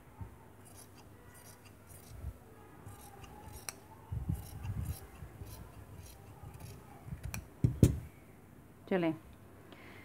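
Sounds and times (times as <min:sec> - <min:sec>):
scissors snipping cloth: 0:02.9 - 0:03.8, 0:04.4 - 0:07.5.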